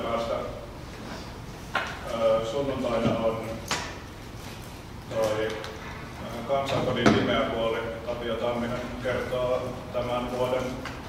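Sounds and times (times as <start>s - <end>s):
man speaking: 0.0s - 0.7s, 2.0s - 3.6s, 5.1s - 10.9s.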